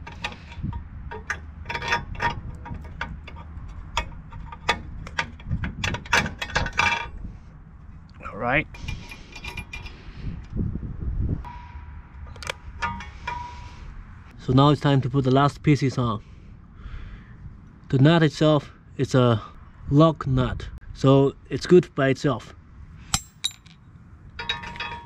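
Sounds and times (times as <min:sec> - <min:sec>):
metal bolt clinking: 0:00.0 - 0:07.2, 0:08.8 - 0:10.0, 0:11.5 - 0:13.8, 0:23.1 - 0:25.0
metal scraping and rubbing: 0:00.0 - 0:07.4, 0:08.6 - 0:10.4, 0:11.4 - 0:14.4.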